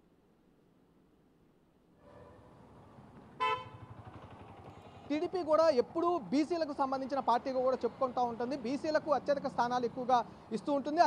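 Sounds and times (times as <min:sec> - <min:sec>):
faint street noise: 0:00.0 - 0:11.0
vehicle horn toot: 0:03.4 - 0:03.9.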